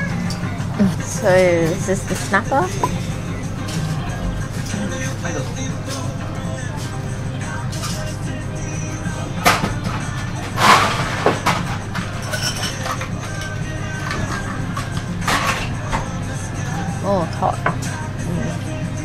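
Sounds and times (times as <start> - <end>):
background music: 0.0 - 19.0
restaurant chatter: 0.0 - 19.0
dishes clattering and knocking: 9.4 - 16.2.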